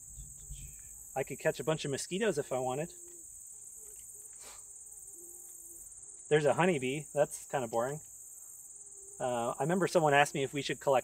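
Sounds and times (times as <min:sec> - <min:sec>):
flying insect buzzing: 0:00.0 - 0:10.5
crickets chirping: 0:00.0 - 0:11.0.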